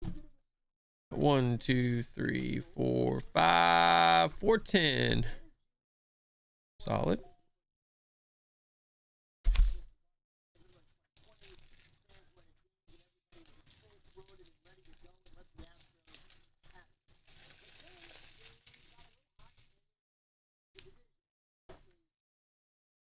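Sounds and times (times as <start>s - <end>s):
foil wrappers crinkling and tearing: 10.6s - 19.8s.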